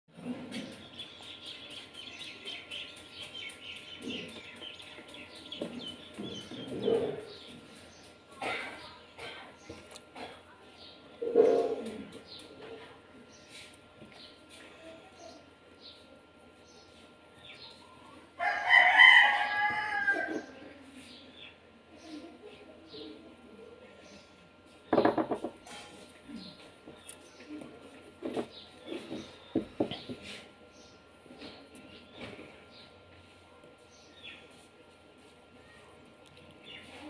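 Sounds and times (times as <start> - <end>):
rooster crowing: 18.4 - 20.5.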